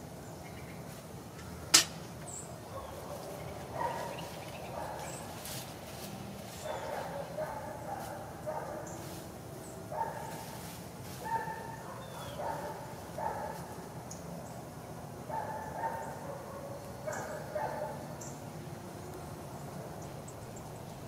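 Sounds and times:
dog barking: 2.7s - 5.3s, 6.6s - 9.0s, 9.9s - 10.5s, 11.2s - 13.8s, 15.3s - 18.1s.

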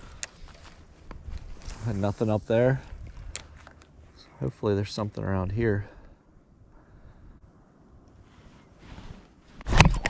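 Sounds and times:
fishing rod handling noise: 2.9s - 4.0s.

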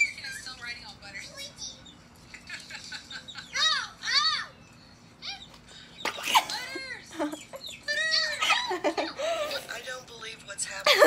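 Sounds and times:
girl giggling: 6.1s - 9.7s.

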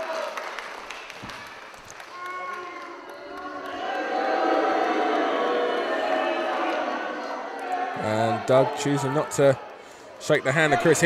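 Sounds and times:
crowd noise: 1.2s - 11.0s.

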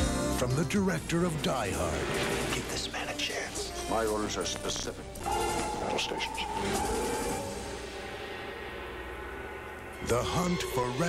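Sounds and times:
faint sustained tones: 5.2s - 11.0s
low rumbling drone: 5.2s - 11.0s.

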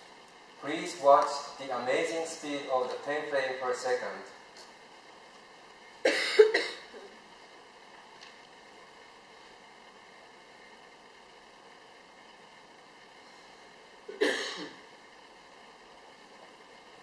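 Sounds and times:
faint hum tones: 0.0s - 17.0s
room hiss: 0.0s - 17.0s
person coughing: 6.1s - 7.1s, 14.1s - 14.8s.

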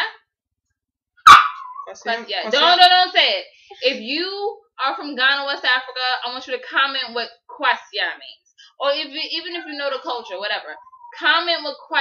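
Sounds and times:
dog barking and whining: 1.2s - 2.0s, 9.4s - 12.0s.

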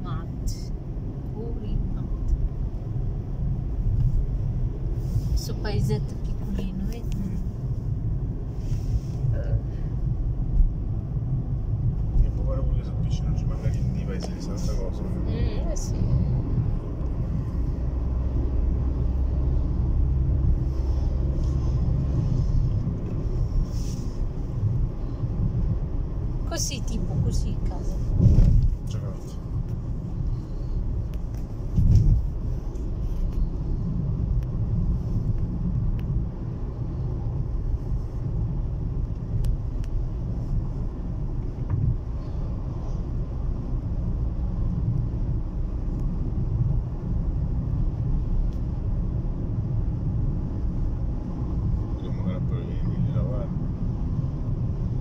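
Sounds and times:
car road noise rumble: 0.0s - 55.0s.

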